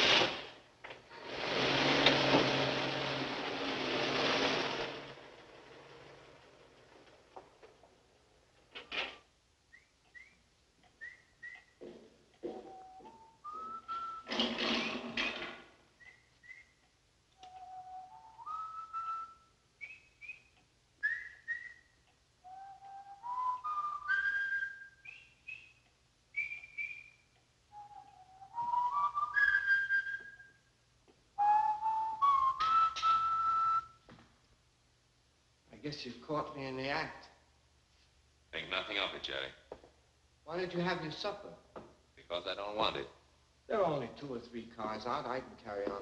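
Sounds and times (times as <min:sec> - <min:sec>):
rushing noise burst: 0:01.1 - 0:06.4
man whistling a tune: 0:09.7 - 0:10.4, 0:11.0 - 0:11.8, 0:12.6 - 0:14.3, 0:16.0 - 0:16.8, 0:17.4 - 0:30.6, 0:31.4 - 0:34.1.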